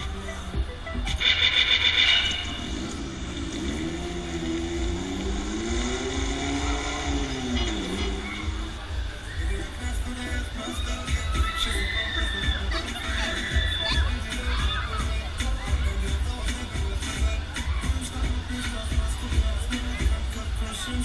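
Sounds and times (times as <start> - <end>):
fairground ride music: 0.0 - 21.0
riders screaming: 4.8 - 9.7, 10.6 - 15.3.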